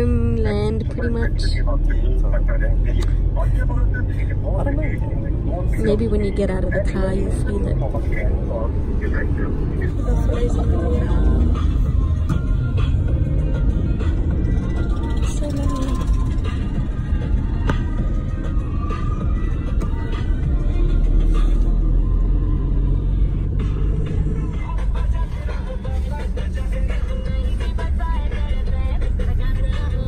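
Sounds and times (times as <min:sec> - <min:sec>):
car road rumble: 0:00.0 - 0:30.0
music playing: 0:00.0 - 0:30.0.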